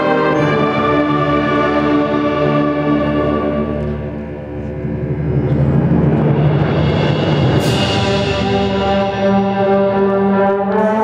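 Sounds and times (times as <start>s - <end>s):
held brass chord: 0.0s - 4.8s, 5.4s - 11.0s
low timpani roll: 0.0s - 11.0s.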